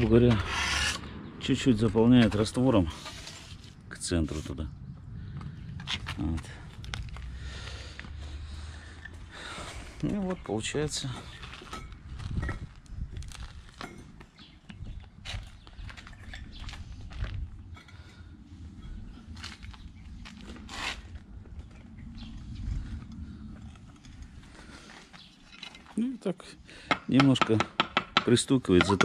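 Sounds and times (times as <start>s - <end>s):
low rumble: 0.0s - 13.6s, 16.1s - 25.2s.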